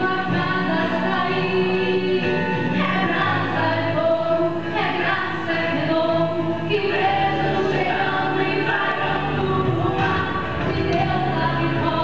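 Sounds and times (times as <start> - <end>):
women's choir singing a hymn: 0.0 - 12.0.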